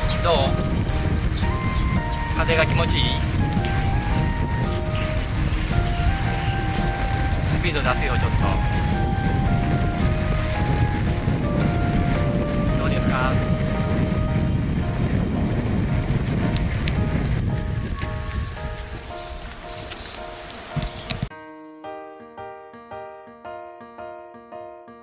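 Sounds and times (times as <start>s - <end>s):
background music: 0.0s - 16.2s, 17.0s - 25.0s
wind rumbling over microphone: 0.0s - 21.3s.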